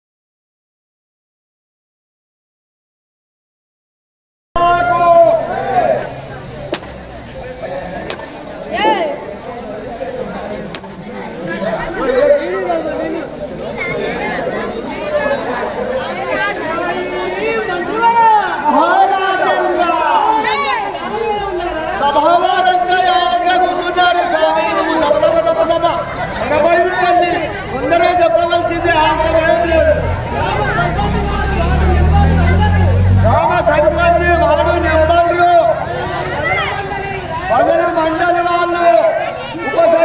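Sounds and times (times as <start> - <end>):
crowd chatter: 4.6 - 40.0
voices calling out: 4.6 - 40.0.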